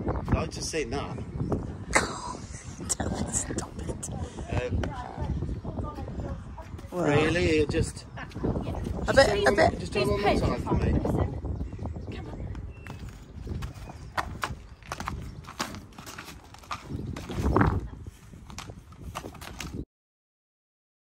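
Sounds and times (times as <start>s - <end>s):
horse hooves on gravel: 12.9s - 19.8s.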